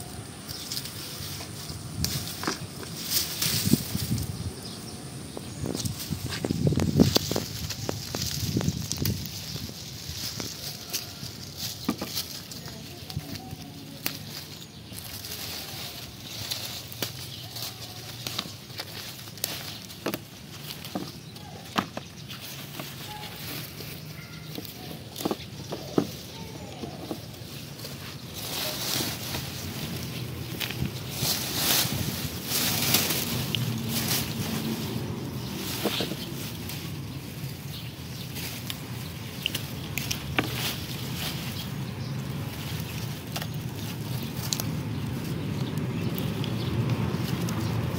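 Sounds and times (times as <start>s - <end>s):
dry vines and leaves rustling: 0.0s - 47.9s.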